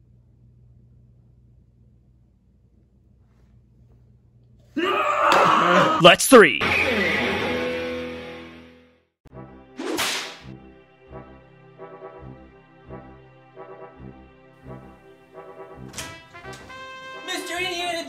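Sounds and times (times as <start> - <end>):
whip crack: 9.8 - 10.5
brass march music: 10.4 - 18.0
held musical chord: 10.6 - 18.0.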